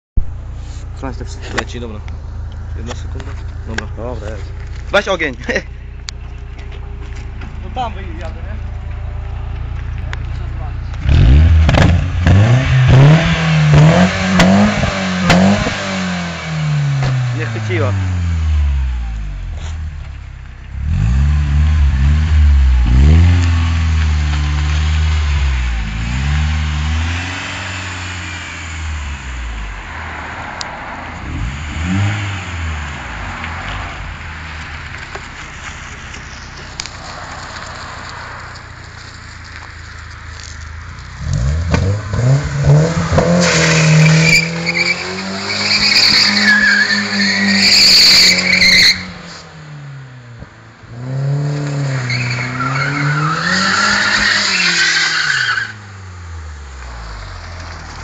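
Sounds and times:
car engine revving: 0.7 - 58.0
tyres squealing: 43.1 - 49.2, 52.0 - 55.8.

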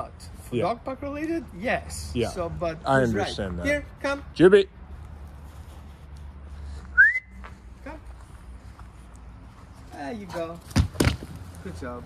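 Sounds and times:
dog recall whistle: 6.9 - 7.4.

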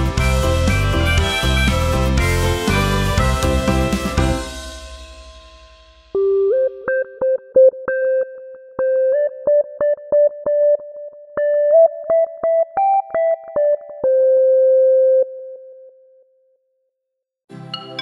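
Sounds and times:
electronic keyboard melody: 0.0 - 4.6, 6.2 - 15.9, 17.5 - 18.0.

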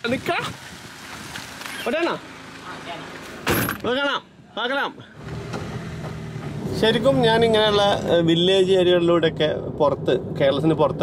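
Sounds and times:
vehicle engine and road noise: 0.0 - 11.0.

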